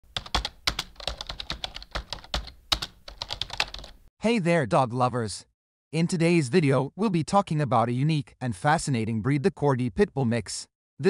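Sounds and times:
computer keyboard typing: 0.1 - 4.0.

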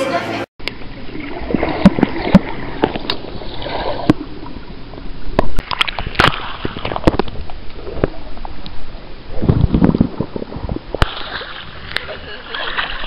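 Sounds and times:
sharp knocks underwater: 0.6 - 8.7, 9.4 - 12.2
muffled underwater sloshing: 0.6 - 13.0
water splashing: 0.6 - 13.0.

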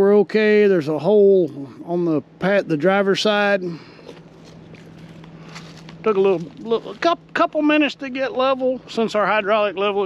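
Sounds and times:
steady low hum: 0.0 - 10.0
footsteps of person walking: 4.1 - 7.1.

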